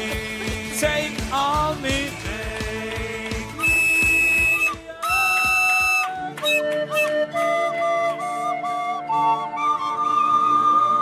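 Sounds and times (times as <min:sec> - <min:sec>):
flute high sustained notes: 0:03.6 - 0:11.0.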